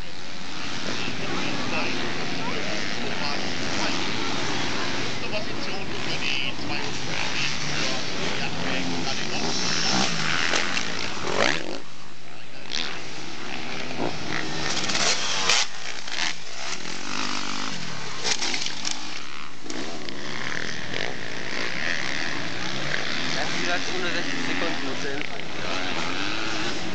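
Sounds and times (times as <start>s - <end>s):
motocross bike engines revving: 0.0s - 26.9s.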